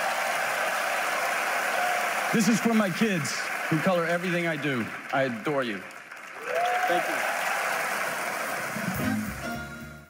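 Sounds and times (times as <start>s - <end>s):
audience applause: 0.0s - 9.6s
music: 8.8s - 10.0s.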